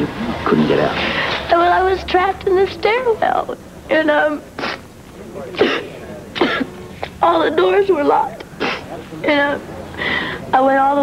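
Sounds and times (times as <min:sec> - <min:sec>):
woman clearing her throat: 0:05.6 - 0:06.8.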